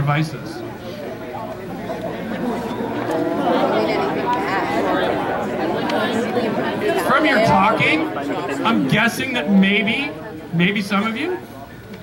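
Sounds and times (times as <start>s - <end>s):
crowd of students chattering: 0.0s - 12.0s.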